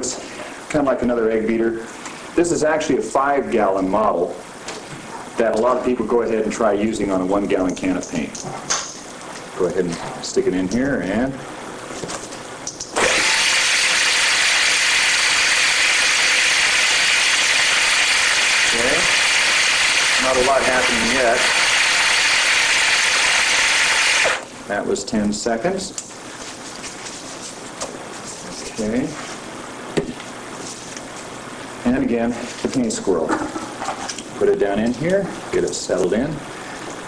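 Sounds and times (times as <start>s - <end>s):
steady background hiss: 0.0s - 37.0s
electric drill motor running: 13.0s - 24.4s.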